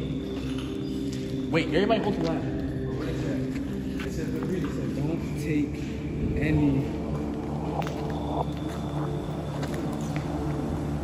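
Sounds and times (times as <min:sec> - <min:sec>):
footsteps on gritty pavement: 0:00.0 - 0:11.0
steady low hum: 0:00.0 - 0:11.0.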